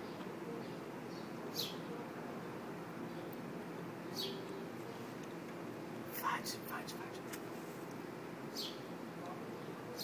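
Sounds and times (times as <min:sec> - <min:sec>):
breathy whisper: 0:06.1 - 0:07.3.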